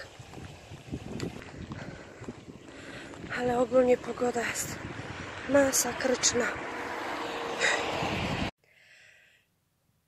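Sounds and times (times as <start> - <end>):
wind buffeting microphone: 0.0 - 8.5.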